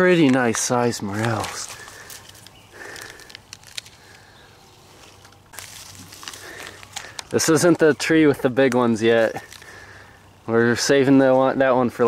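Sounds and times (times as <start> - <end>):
plant stems crackling and snapping: 0.0 - 10.0
rustling of grass and weeds: 0.0 - 11.6.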